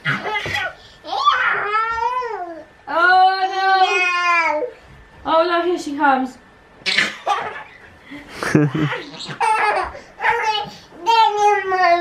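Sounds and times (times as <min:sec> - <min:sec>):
toddler laughing: 0:08.5 - 0:10.6.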